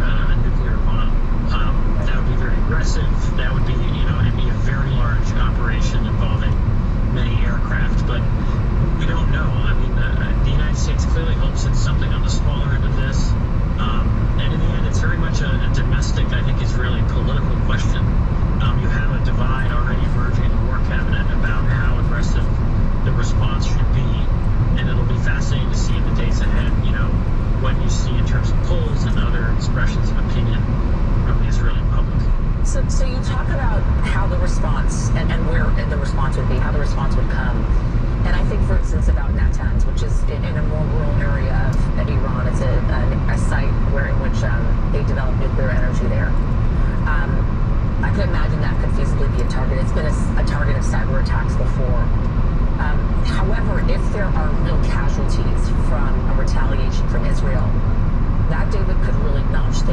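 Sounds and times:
car engine and tyre rumble: 0.0 - 59.9
faint radio news broadcast: 0.0 - 59.9.

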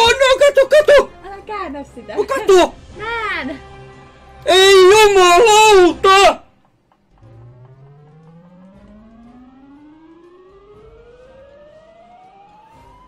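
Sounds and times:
slot machine rising tone: 7.1 - 13.0.

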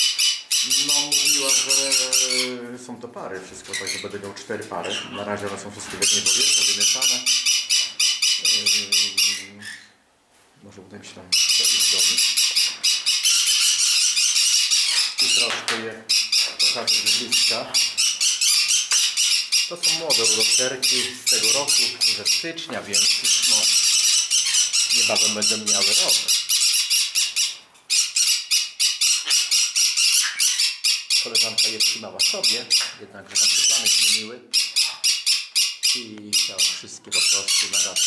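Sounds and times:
parrots screeching: 0.0 - 2.6, 3.6 - 4.2, 4.8 - 5.3, 5.9 - 10.0, 11.3 - 38.0.

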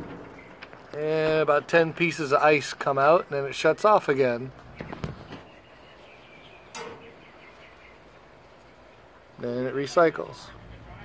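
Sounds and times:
relay click: 6.7 - 7.2.

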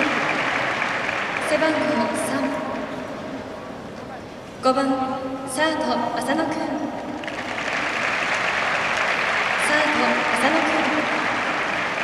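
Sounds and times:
crowd applauding: 0.0 - 2.3, 7.2 - 12.0.

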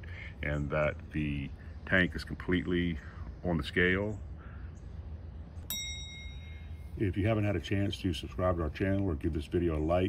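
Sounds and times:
faint low hum: 0.0 - 10.0
bright bell-like ding: 5.7 - 6.9.

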